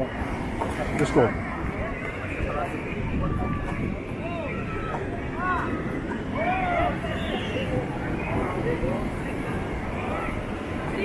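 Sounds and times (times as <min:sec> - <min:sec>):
people talking and calling: 0:00.0 - 0:11.0.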